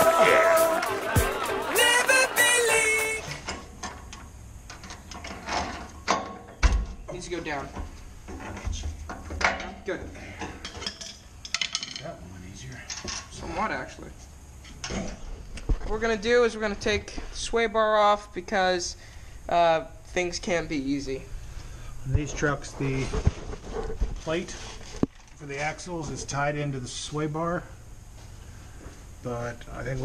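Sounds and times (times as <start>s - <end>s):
music: 0.0s - 3.4s
voices: 0.0s - 3.4s.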